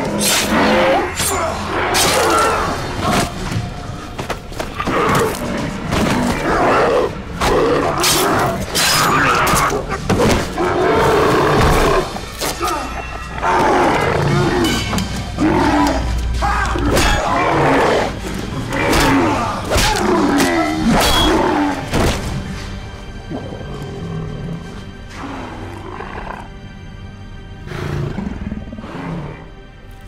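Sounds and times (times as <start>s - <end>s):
dramatic music score: 0.0s - 30.0s.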